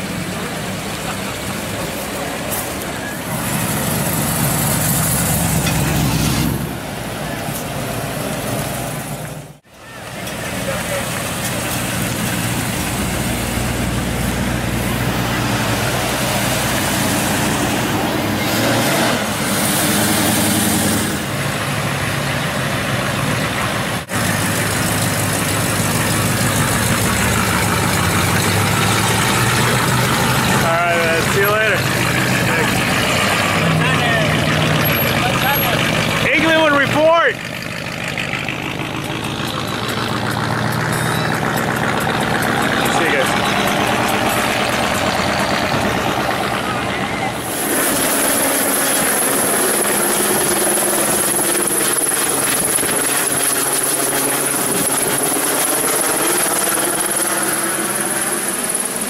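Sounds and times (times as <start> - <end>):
cars driving slowly past: 0.0 - 59.0
people's voices: 9.7 - 19.1, 28.8 - 37.4, 38.5 - 48.1.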